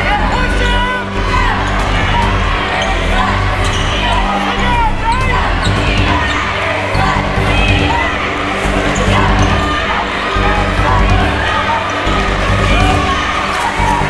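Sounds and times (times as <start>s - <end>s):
low music with bass notes: 0.0s - 14.0s
voices: 0.0s - 14.0s.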